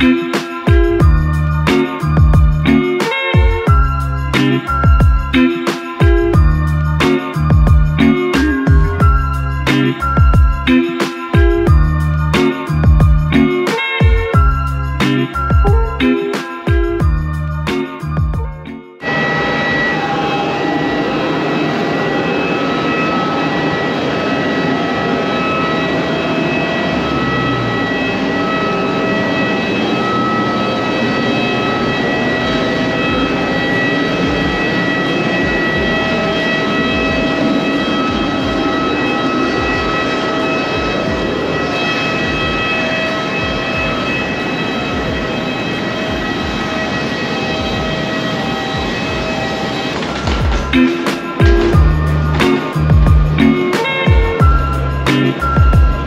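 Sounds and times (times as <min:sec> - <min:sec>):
jet engine whine: 0:00.0 - 0:56.0
low thumps: 0:50.0 - 0:54.7.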